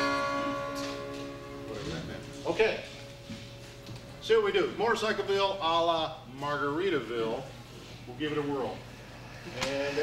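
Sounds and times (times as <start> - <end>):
acoustic guitar chord strummed: 0.0 - 4.8.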